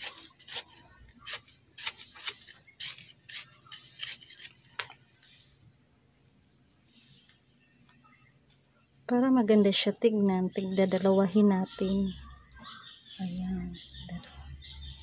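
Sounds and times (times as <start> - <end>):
stick scraping through rice hulls: 0.0 - 5.8, 6.8 - 7.5.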